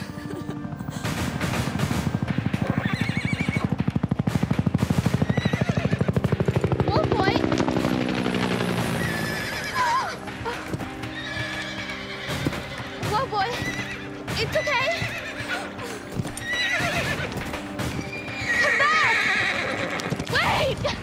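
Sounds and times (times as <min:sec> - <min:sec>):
horse whinnying: 0:02.6 - 0:03.7, 0:05.2 - 0:06.1, 0:09.0 - 0:20.9.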